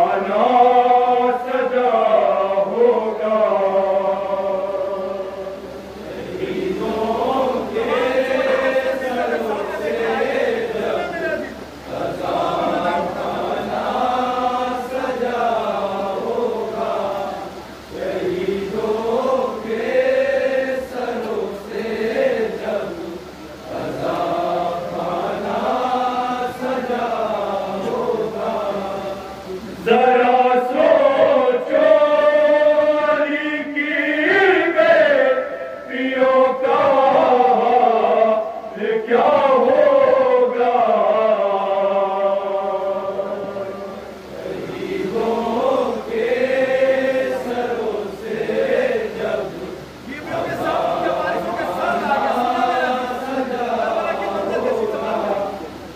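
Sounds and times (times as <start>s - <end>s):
men chanting a lament: 0.0s - 55.9s.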